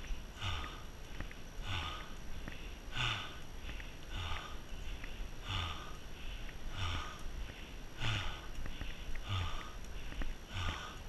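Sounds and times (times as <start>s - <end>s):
person breathing hard: 0.0s - 11.0s.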